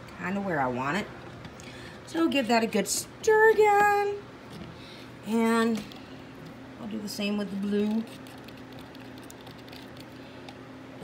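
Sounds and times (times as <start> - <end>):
stick ticking and scraping cup: 7.8 - 10.6.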